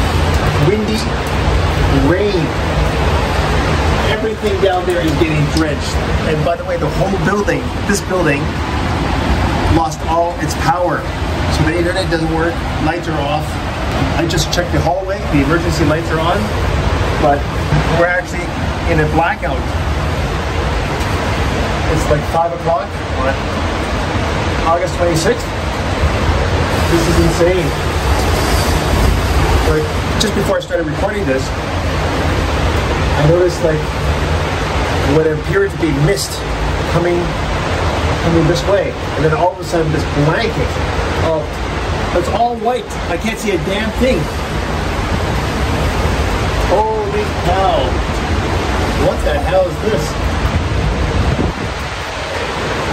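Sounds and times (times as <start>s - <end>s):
heavy rain: 0.0s - 52.9s
wind: 0.0s - 52.9s.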